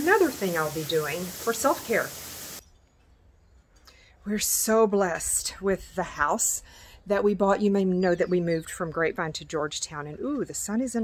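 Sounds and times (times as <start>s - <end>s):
steady hiss: 0.0s - 2.6s.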